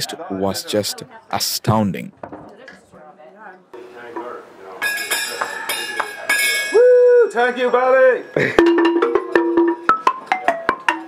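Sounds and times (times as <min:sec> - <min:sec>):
wooden xylophone struck with mallets: 0:08.4 - 0:11.0.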